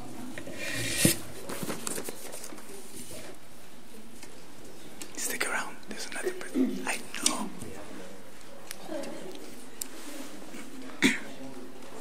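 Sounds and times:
people talking quietly: 0.0 - 12.0.

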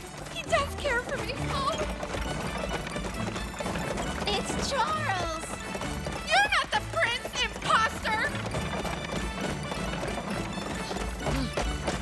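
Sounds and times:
background music: 0.0 - 12.0
horse hooves galloping: 0.0 - 12.0.

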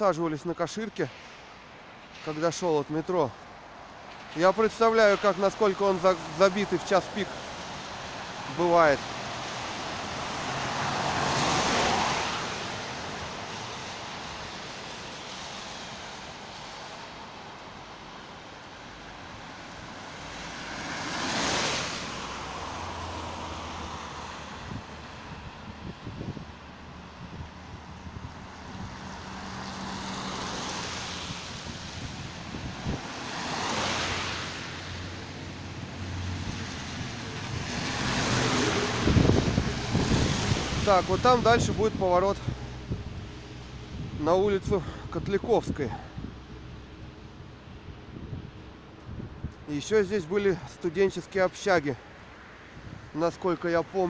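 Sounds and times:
cars passing on wet road: 0.0 - 54.0.

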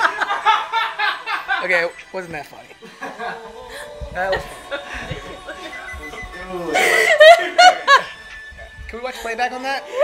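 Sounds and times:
woman laughing: 6.7 - 8.2.

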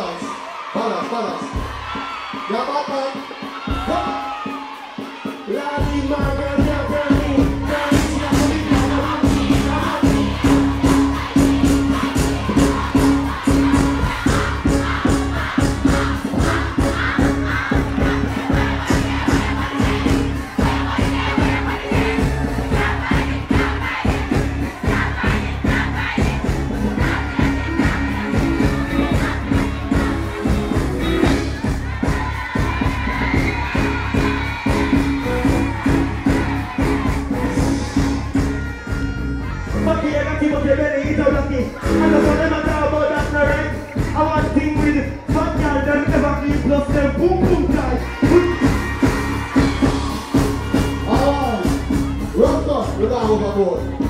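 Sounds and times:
large crowd noise: 0.0 - 54.0
loud live music with heavy bass: 1.4 - 54.0.

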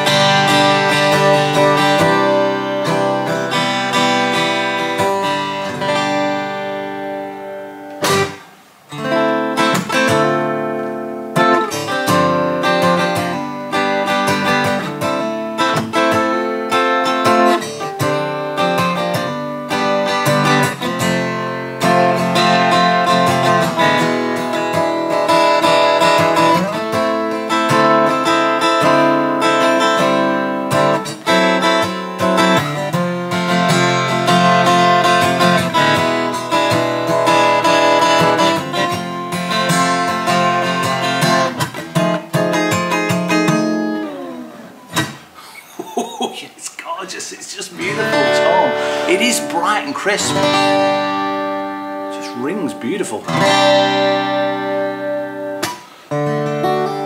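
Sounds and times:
acoustic guitar strumming chords: 0.0 - 57.0.

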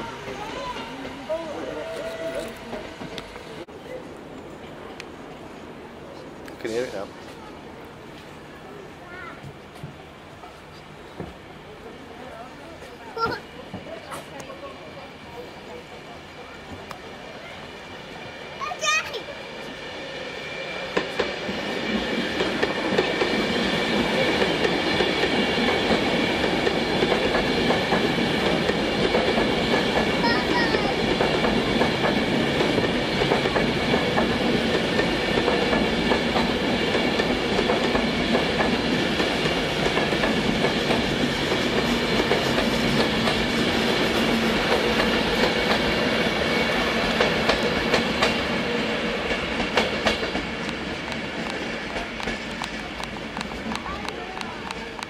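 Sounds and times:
train wheels rushing on rail: 0.0 - 55.0.

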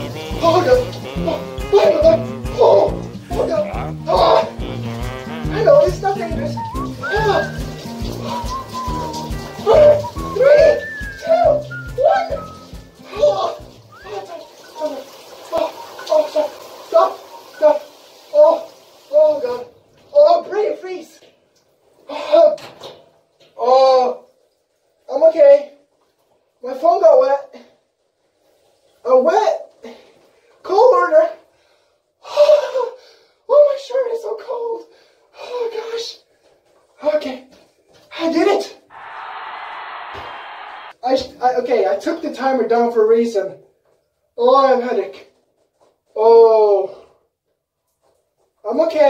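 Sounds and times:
shower head spraying water: 0.0 - 19.4
man crying out: 0.4 - 6.0, 9.6 - 12.4, 13.1 - 15.0
man moaning: 1.2 - 4.9
steady hiss: 38.9 - 41.0.

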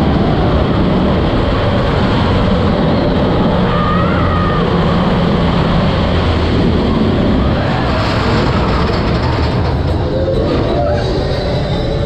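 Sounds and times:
roller coaster running on track: 0.0 - 12.0.

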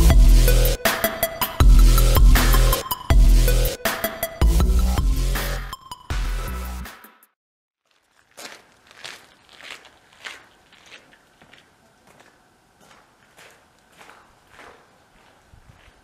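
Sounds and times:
footsteps on gravel: 7.8 - 16.0.

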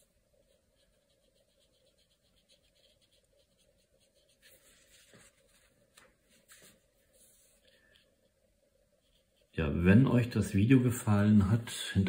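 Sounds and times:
paintbrush stroking paper: 0.0 - 9.8.

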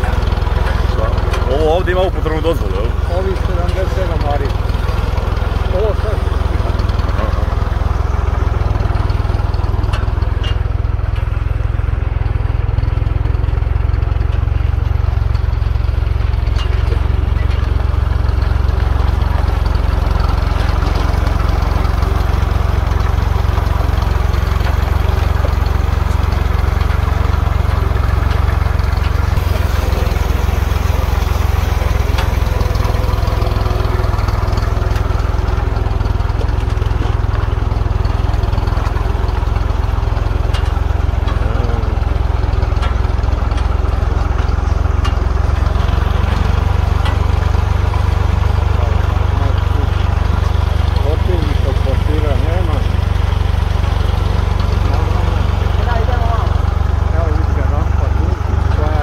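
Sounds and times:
tractor engine droning: 0.0 - 59.0.

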